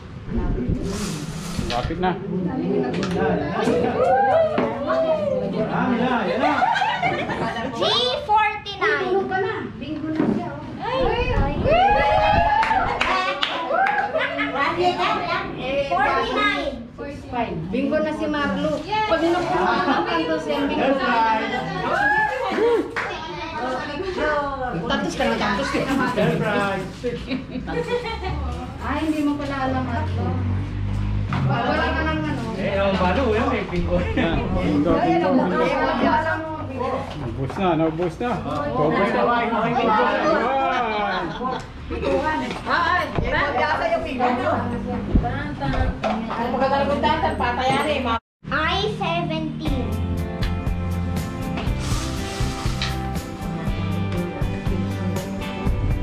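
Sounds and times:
group chatter: 0:00.0 - 0:48.2
people talking: 0:38.5 - 0:50.0.

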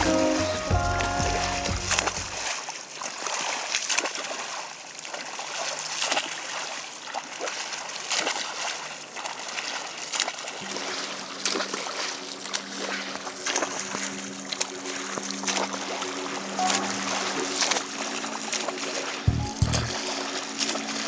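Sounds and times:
boat motor humming: 0:00.0 - 0:02.4, 0:19.3 - 0:20.1
swimmer splashing water: 0:00.0 - 0:21.0.

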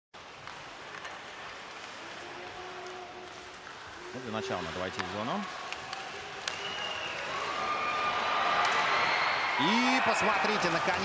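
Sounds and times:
faint clicks of sticks and puck: 0:00.2 - 0:09.0
rink and crowd noise hiss: 0:00.2 - 0:11.0.

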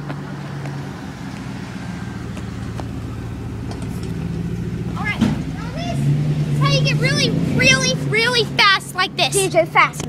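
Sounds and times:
pickup truck engine running: 0:00.0 - 0:10.0.

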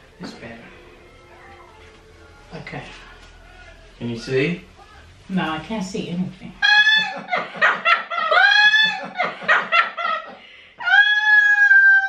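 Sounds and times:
high-pitched laughter: 0:06.6 - 0:12.0.

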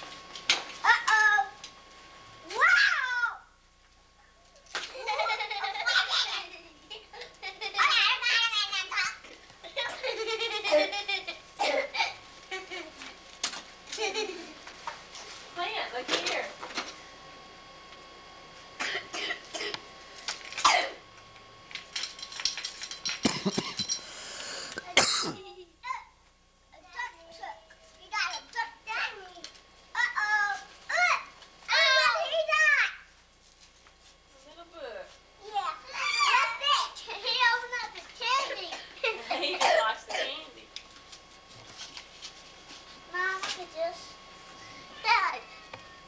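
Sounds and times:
person coughing: 0:18.8 - 0:19.8, 0:20.6 - 0:21.0, 0:23.2 - 0:23.9, 0:24.6 - 0:25.5, 0:39.6 - 0:40.4
young children talking and calling: 0:35.4 - 0:39.0, 0:44.7 - 0:45.8.

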